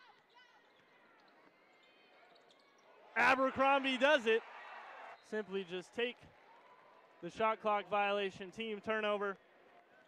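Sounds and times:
faint basketball court sounds: 0.0 - 7.3.

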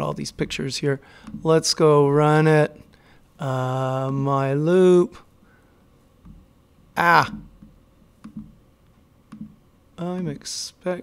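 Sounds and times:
computer mouse clicks: 7.6 - 8.6, 9.3 - 9.6.

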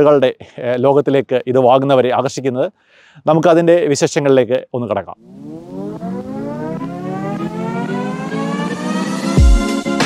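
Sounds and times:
rising tone sound effect: 5.2 - 10.0
music: 5.7 - 10.0.

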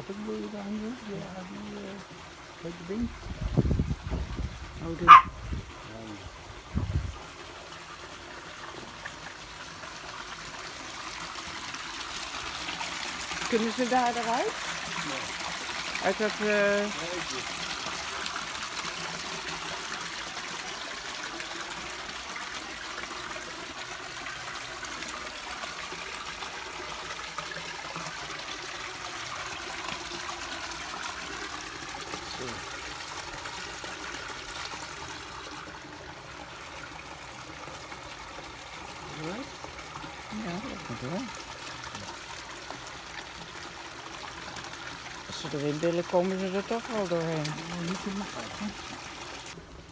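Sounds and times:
water trickling into pond: 0.0 - 49.9.

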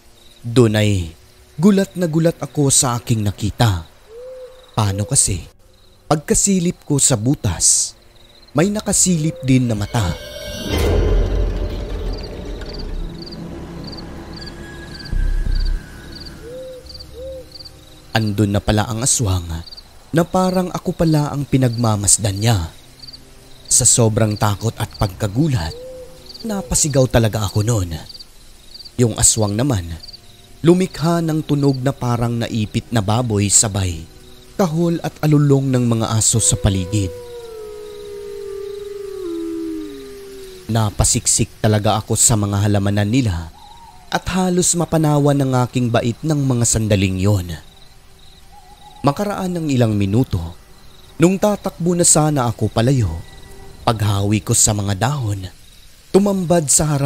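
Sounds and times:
cricket chirps: 0.0 - 57.0
owl hoot: 4.1 - 5.2, 9.1 - 13.1, 15.0 - 17.7, 25.7 - 26.9, 36.1 - 41.4, 43.5 - 44.1, 48.4 - 49.3
deep low rumbling hit: 9.7 - 17.0
dogs howling: 36.1 - 41.2.

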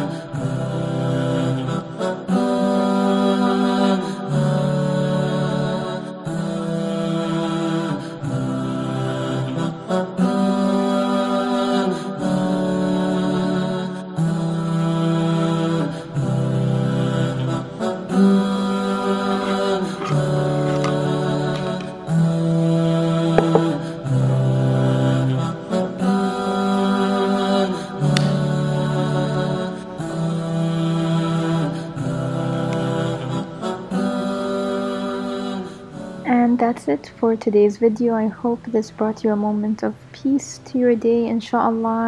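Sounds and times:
voices singing without instruments: 0.0 - 37.1
vocals-only sung music: 0.0 - 42.0.

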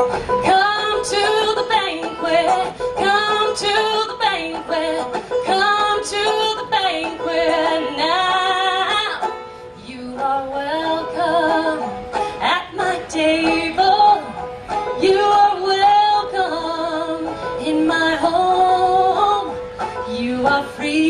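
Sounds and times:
banjo: 0.0 - 21.0
woman singing folk song: 0.0 - 21.0.

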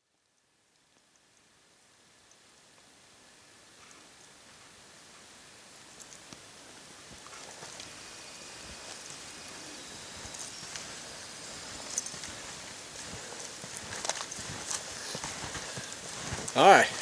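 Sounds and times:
footsteps crunching through snow: 7.0 - 17.0.

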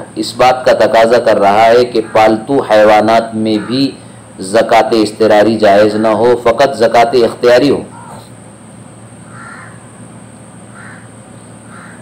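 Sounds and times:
low room hum: 0.0 - 12.0
bird calling: 1.3 - 4.4, 7.8 - 8.4, 9.2 - 12.0.

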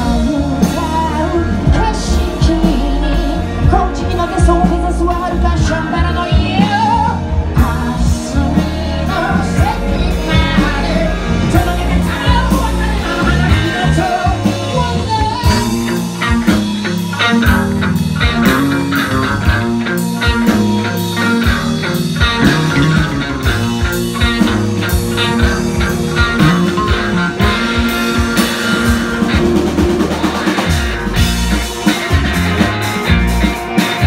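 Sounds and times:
rock band playing: 0.0 - 34.0.

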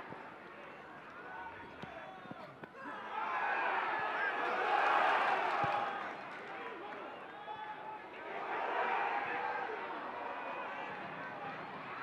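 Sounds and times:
murmur of stadium crowd: 0.0 - 12.0.

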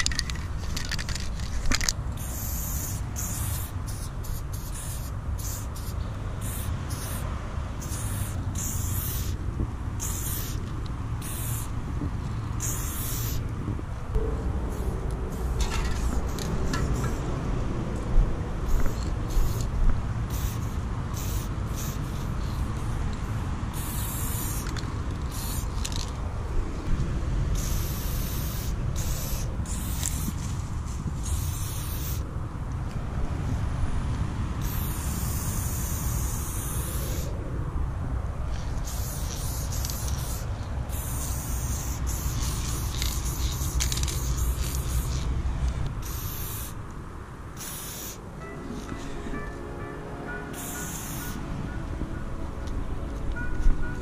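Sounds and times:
aerosol spray can hissing: 2.2 - 7.2, 7.8 - 9.4, 10.0 - 10.6, 11.2 - 11.7, 12.6 - 13.4, 18.7 - 19.7, 20.3 - 22.6, 23.8 - 26.0, 27.6 - 30.4, 31.2 - 32.2, 34.6 - 37.3, 38.8 - 45.3, 46.0 - 46.8, 47.6 - 48.2, 50.5 - 51.4.

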